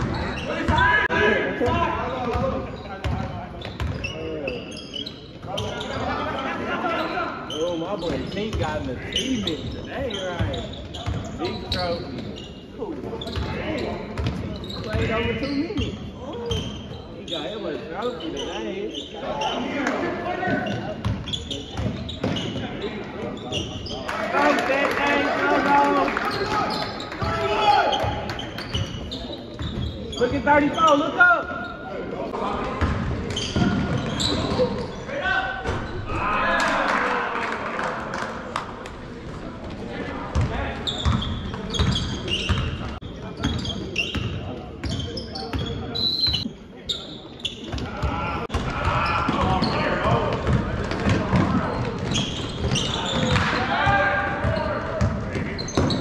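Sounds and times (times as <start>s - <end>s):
voices echoing in gymnasium: 0.0s - 56.0s.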